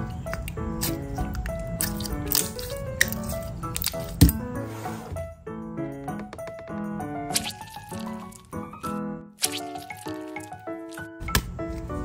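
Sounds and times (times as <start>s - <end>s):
background music: 0.0s - 12.0s
slime squishing and clicking: 0.2s - 4.4s, 7.3s - 8.4s, 9.4s - 11.4s.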